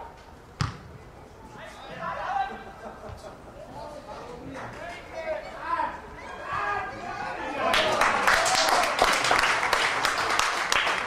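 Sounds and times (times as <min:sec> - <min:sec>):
football being kicked: 0:00.6 - 0:00.9.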